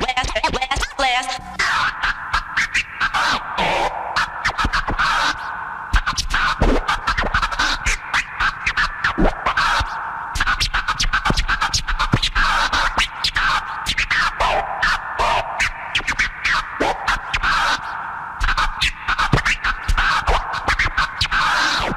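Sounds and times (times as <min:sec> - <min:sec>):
turntable scratching: 0:00.0 - 0:05.4, 0:06.0 - 0:13.5.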